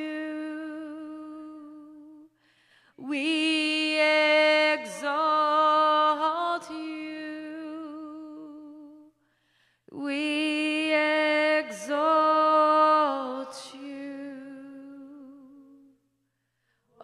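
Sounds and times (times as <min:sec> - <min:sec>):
woman singing unaccompanied: 0:00.0 - 0:02.3, 0:03.0 - 0:09.1, 0:09.9 - 0:16.0.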